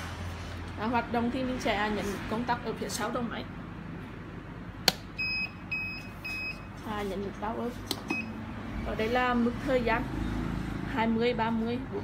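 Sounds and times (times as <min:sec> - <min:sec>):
short high beeps: 0:05.2 - 0:06.7.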